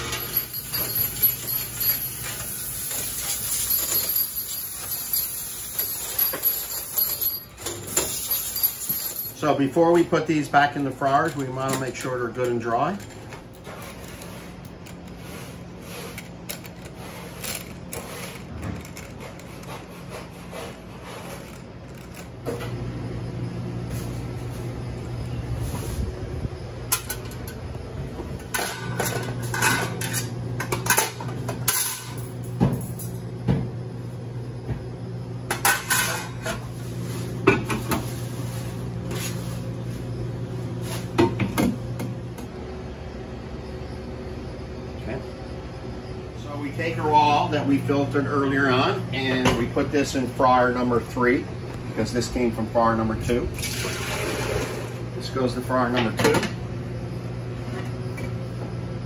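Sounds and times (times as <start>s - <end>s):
metal racks clanking: 0.0s - 15.2s
steady low hum: 0.0s - 59.0s.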